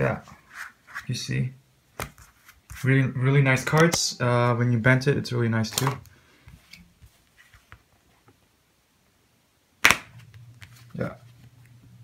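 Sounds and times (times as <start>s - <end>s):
playing card snapping: 5.7s - 6.0s, 9.8s - 10.7s.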